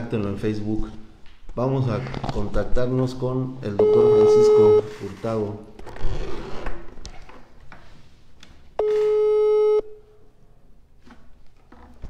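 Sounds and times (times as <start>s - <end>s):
telephone ringback tone: 3.8s - 4.9s, 8.8s - 9.9s.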